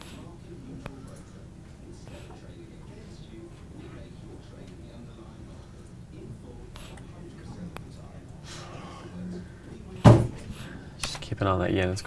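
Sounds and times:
loud thump: 0:10.0 - 0:10.4.

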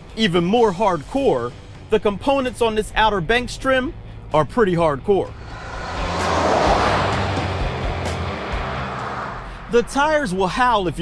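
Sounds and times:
vehicle driving past: 0:05.2 - 0:10.3.

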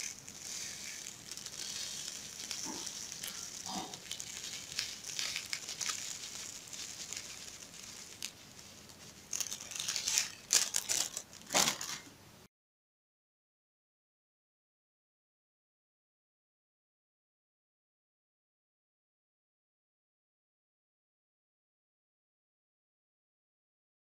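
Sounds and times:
small stones clicking: 0:00.0 - 0:11.6
plastic bag crinkling: 0:00.0 - 0:12.1.

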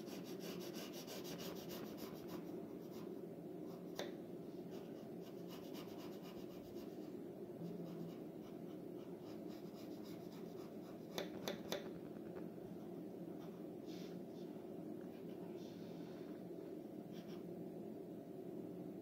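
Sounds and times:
pencil sketching on paper: 0:00.0 - 0:03.1, 0:04.7 - 0:07.0, 0:07.6 - 0:11.3
low steady hum: 0:00.0 - 0:19.0.

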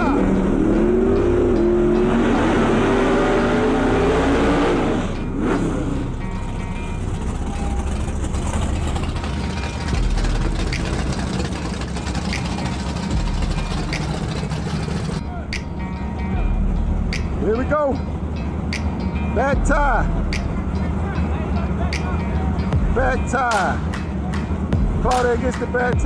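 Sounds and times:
racing car engines at full throttle: 0:00.0 - 0:26.0
low engine rumble: 0:05.0 - 0:26.0.

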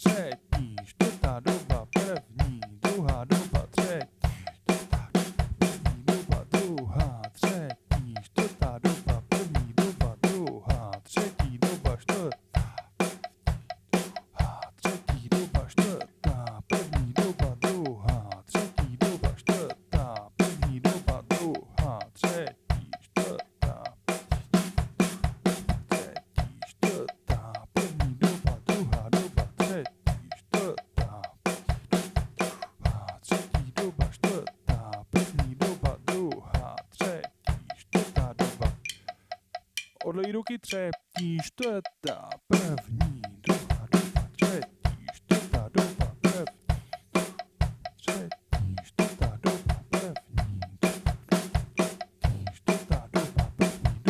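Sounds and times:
bass drum: 0:00.0 - 0:12.9, 0:13.5 - 0:22.0, 0:22.6 - 0:36.8, 0:37.5 - 0:39.0, 0:42.1 - 0:54.0
snare and tom strokes: 0:02.9 - 0:06.9, 0:11.2 - 0:17.9, 0:23.2 - 0:27.1, 0:27.8 - 0:34.6, 0:43.4 - 0:54.0.

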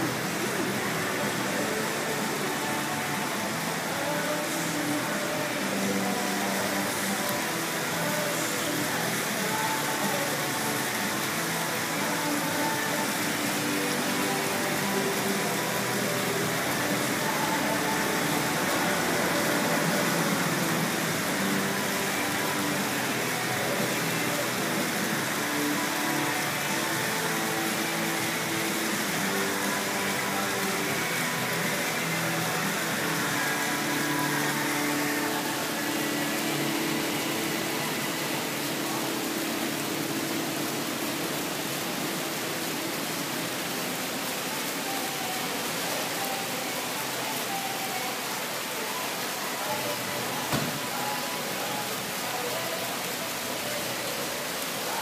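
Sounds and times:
faint music: 0:00.0 - 0:55.0
outdoor background noise: 0:00.0 - 0:55.0.

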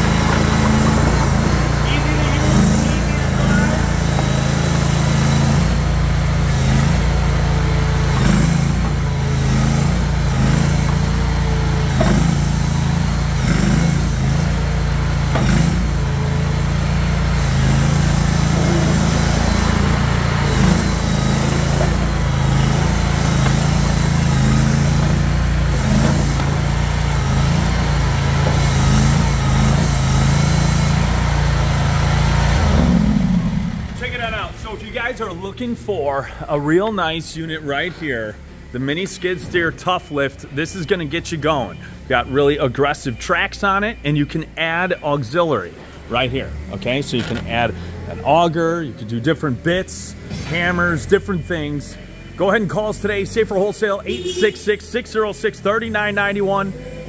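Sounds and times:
small gas engine running: 0:00.0 - 0:34.5.

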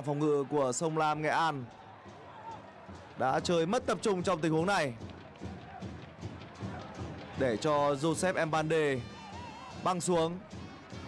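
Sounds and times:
faint stadium crowd noise: 0:00.0 - 0:11.0.

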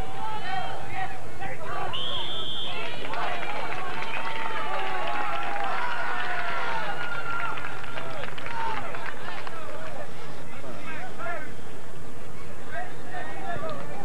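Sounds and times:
long drawn-out yells: 0:02.7 - 0:09.0.

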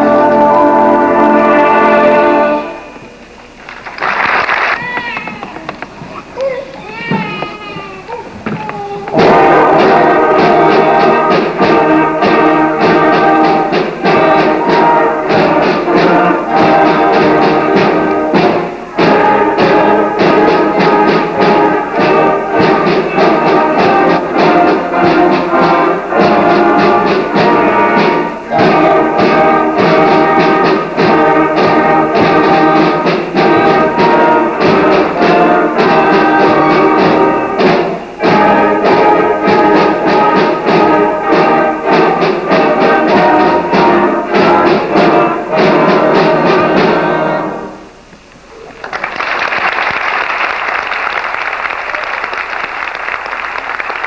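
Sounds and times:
concert band playing: 0:00.0 - 0:54.0.

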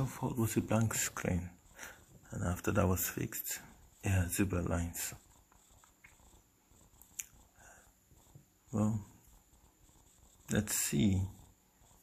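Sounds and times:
soft ticks: 0:05.5 - 0:06.2, 0:07.0 - 0:07.4.

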